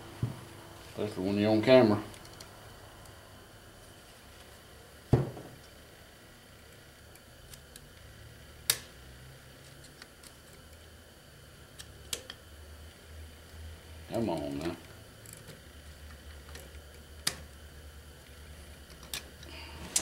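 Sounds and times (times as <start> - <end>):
dull knock: 5.1 - 5.5.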